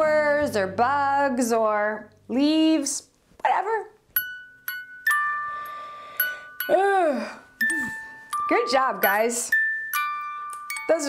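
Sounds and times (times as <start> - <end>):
bell-like chime jingle: 7.5 - 11.0.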